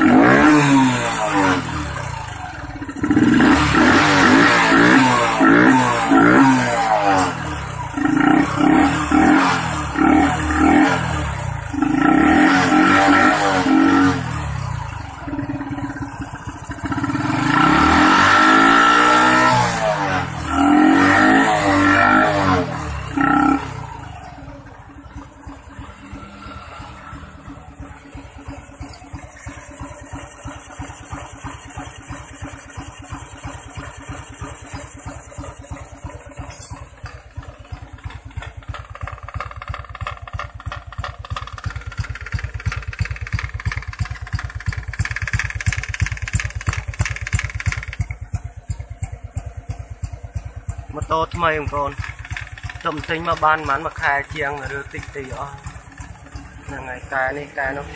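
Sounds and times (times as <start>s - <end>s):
motorcycle engine revving and idling: 0.0s - 57.9s.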